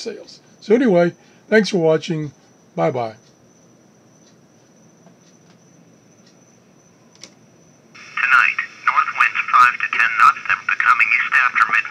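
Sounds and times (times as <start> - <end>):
scanner radio hiss: 7.9 - 11.9
voice over radio speaker: 8.0 - 11.9.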